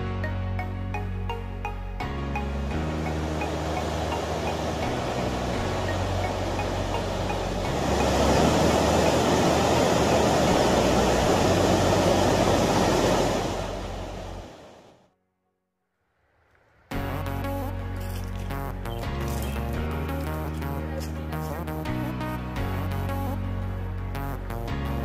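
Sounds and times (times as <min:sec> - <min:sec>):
background music with bass line: 0:00.0 - 0:12.5, 0:16.9 - 0:25.0
water rushing over a weir: 0:02.7 - 0:14.9.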